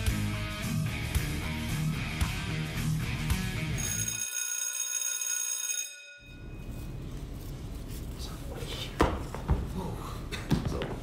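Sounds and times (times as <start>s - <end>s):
rock guitar music: 0.0s - 3.8s
high bell-like ringing: 3.7s - 7.1s.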